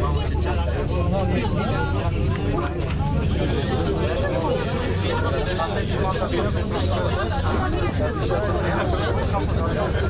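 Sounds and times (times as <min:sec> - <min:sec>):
low rumble of gondola cabin: 0:00.0 - 0:10.0
people talking over one another: 0:00.0 - 0:10.0.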